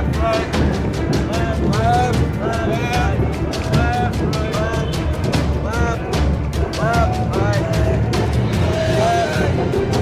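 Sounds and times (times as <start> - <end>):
drum strokes: 0.0 - 10.0
parade band music: 0.0 - 10.0.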